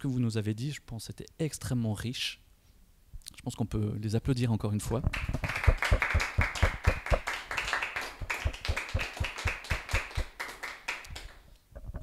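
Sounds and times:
audience applauding: 0:05.2 - 0:11.4.

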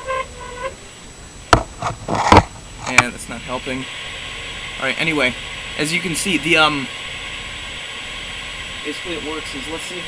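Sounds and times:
faint high-pitched whine: 0:00.0 - 0:10.0
steady hiss: 0:00.0 - 0:10.0.

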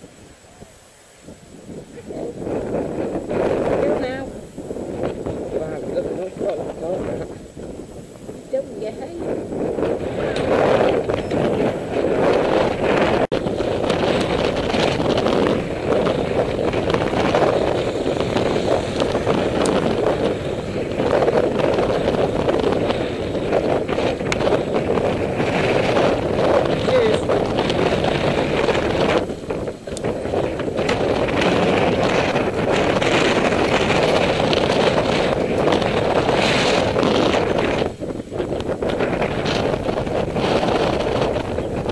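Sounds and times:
bicycle tyres rumbling over potholes: 0:00.0 - 0:41.9
wind buffeting microphone: 0:00.0 - 0:41.9.

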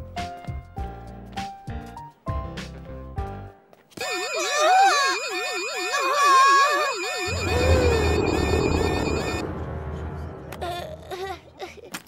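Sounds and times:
fast high beeping: 0:04.0 - 0:09.4
security gate alarm siren warbling: 0:04.0 - 0:09.4.

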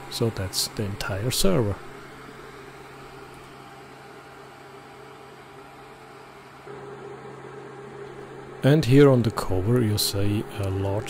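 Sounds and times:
constant low hum: 0:00.0 - 0:11.0
server cooling fans whirring: 0:00.0 - 0:11.0.

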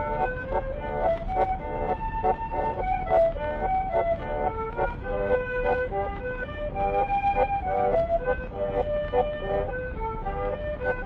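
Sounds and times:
accordion duet waltz: 0:00.0 - 0:11.0.

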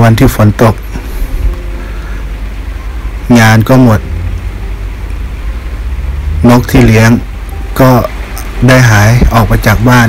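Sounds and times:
low rumble: 0:01.0 - 0:09.7.

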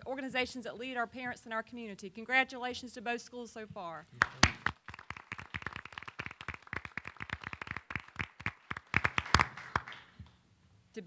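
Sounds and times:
people applauding: 0:04.2 - 0:10.1.

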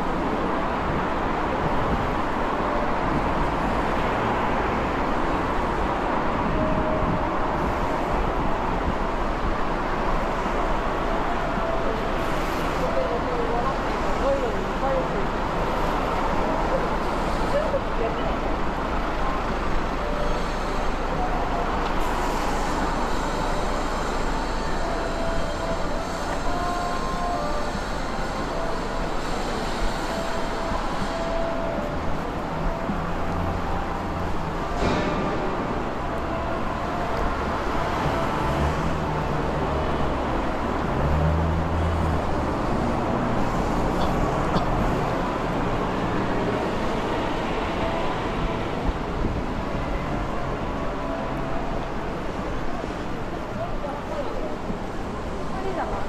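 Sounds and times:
cars passing on wet road: 0:00.0 - 0:56.0
passers-by talking: 0:10.0 - 0:56.0.

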